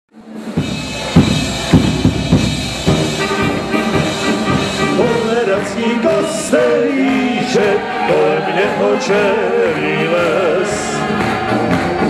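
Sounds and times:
drum beats: 0.2s - 12.0s
held chords: 0.4s - 12.0s
singing: 4.8s - 12.0s.

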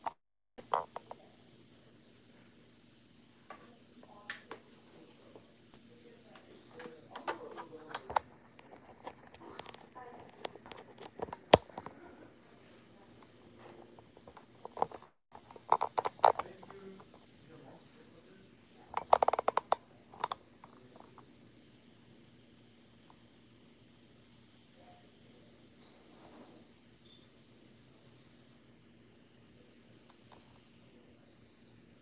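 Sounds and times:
faint clicks and taps: 5.4s - 17.3s, 18.9s - 21.3s.

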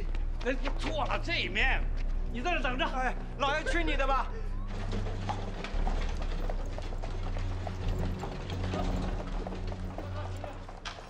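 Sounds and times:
hooves clicking on paving: 0.0s - 2.5s, 4.6s - 11.0s
cart wheels clattering: 4.6s - 11.0s.

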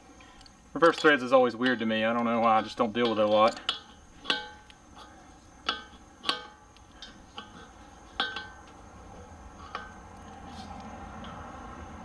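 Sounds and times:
wrench clinking on brass fittings: 0.3s - 7.6s.

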